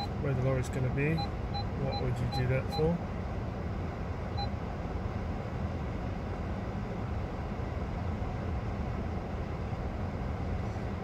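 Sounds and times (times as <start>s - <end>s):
idling engines rumble: 0.0s - 11.0s.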